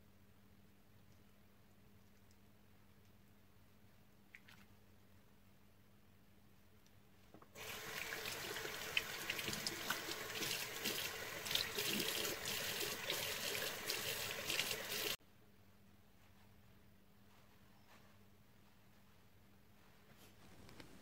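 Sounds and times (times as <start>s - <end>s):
sink tap running: 7.6s - 15.2s.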